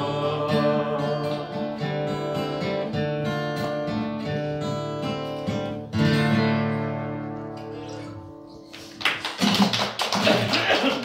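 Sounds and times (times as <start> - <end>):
audience applauding: 8.7 - 11.0.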